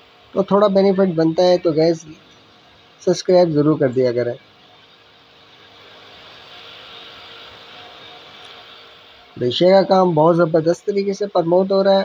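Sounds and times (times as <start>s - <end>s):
faint steady rushing noise: 0.0s - 12.0s.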